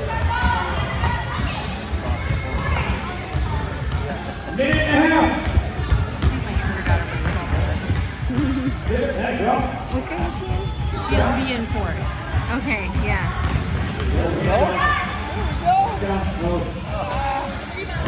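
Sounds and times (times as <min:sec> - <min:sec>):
voices of players and spectators: 0:00.0 - 0:18.0.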